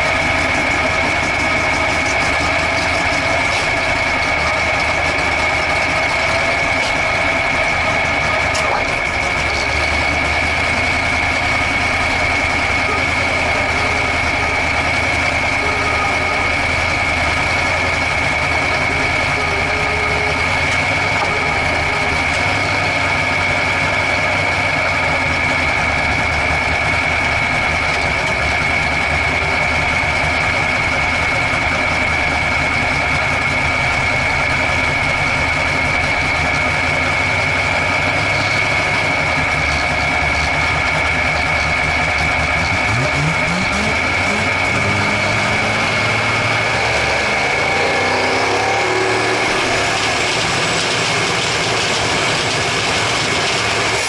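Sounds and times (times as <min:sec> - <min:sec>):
race car engine idling and revving: 0:00.0 - 0:54.0
steady high whine: 0:00.0 - 0:54.0.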